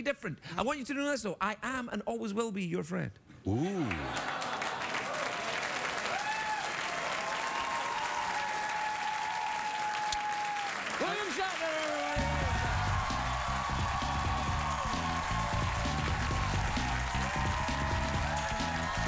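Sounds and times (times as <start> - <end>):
audience applauding and cheering: 3.6 - 19.0
music with heavy bass line: 12.2 - 19.0.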